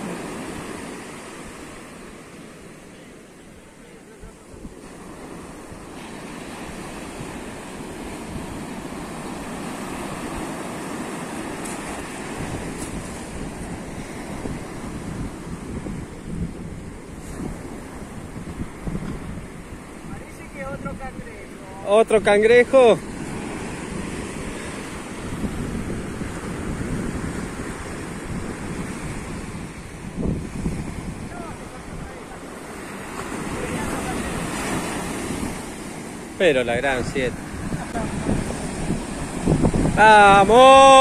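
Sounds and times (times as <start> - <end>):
ocean surf breaking on beach: 0.0 - 41.0
wind buffeting microphone: 4.1 - 41.0.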